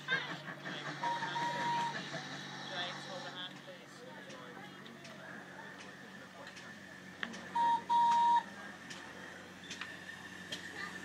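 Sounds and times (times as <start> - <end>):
steam locomotive whistle: 1.0 - 2.0, 7.5 - 8.5.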